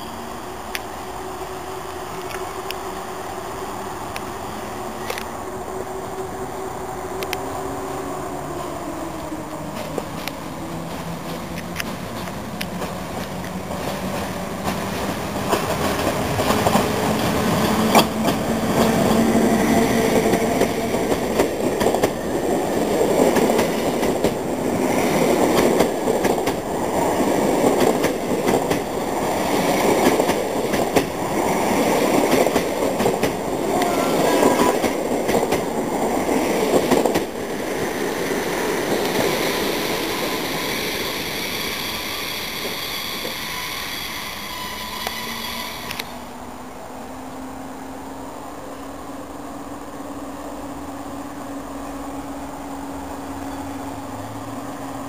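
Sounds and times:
train wheels clattering over rail joints: 20.0 - 33.5.

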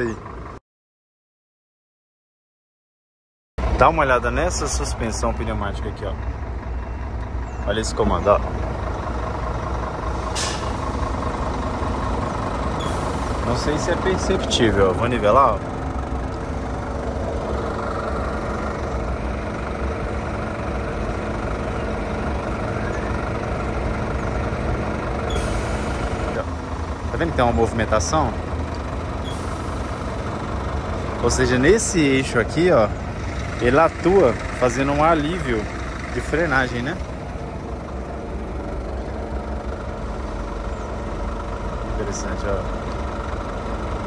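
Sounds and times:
truck diesel engine idling: 0.0 - 0.6, 3.6 - 44.0
compressed air hiss: 10.2 - 10.8
compressed air hissing: 10.2 - 10.8, 12.8 - 13.6.

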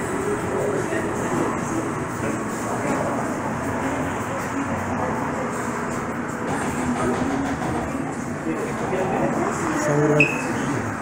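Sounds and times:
steady rumbling background noise: 0.0 - 11.0.

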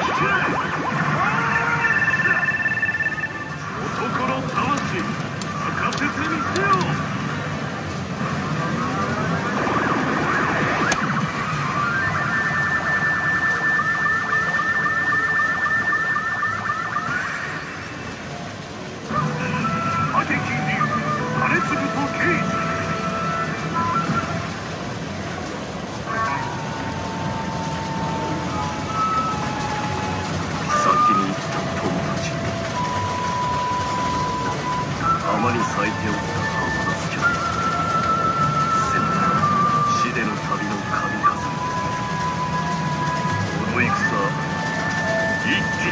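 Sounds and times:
rising warbling electronic effect: 0.0 - 3.9, 8.4 - 18.1
held electronic tone: 0.0 - 4.4
short beeps: 1.8 - 3.6.

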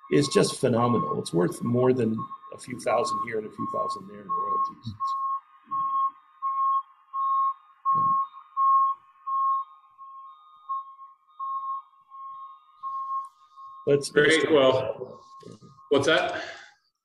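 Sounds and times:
electronic beeping: 0.0 - 16.3.

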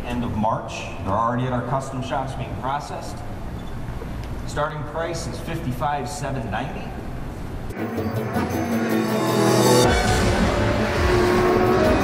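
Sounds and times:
car engine revving: 7.7 - 12.0
theme music: 7.7 - 12.0.

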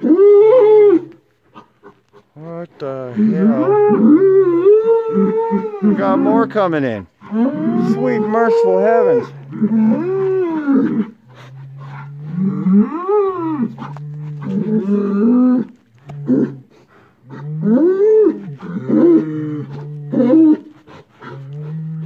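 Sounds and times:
bulls bellowing: 0.0 - 22.0.

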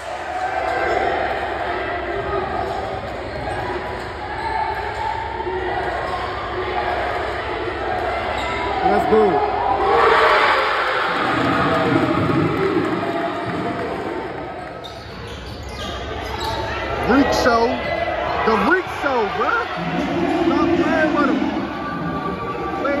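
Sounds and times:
crowd voices and shouts: 0.0 - 23.0.

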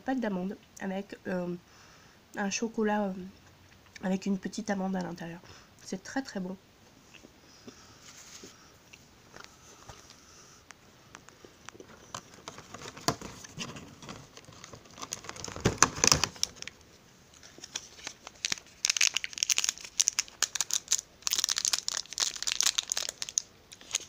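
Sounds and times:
cardboard and foil crinkling: 11.8 - 24.0.

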